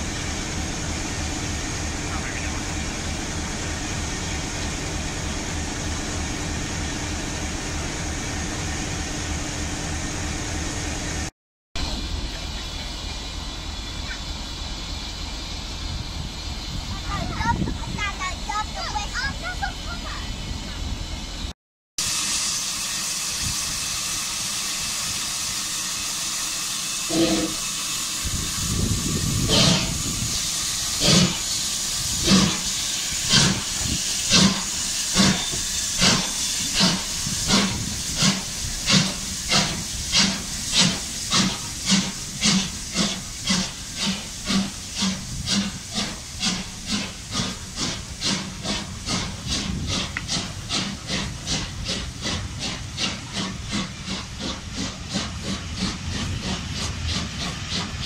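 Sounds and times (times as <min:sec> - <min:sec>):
steam locomotive chuffing: 0:00.0 - 0:58.0
hiss of steam: 0:22.0 - 0:58.0.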